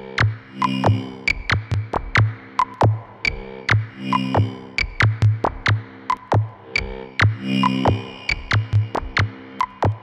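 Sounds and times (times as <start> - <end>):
low throbbing bass pulse: 0.0 - 10.0.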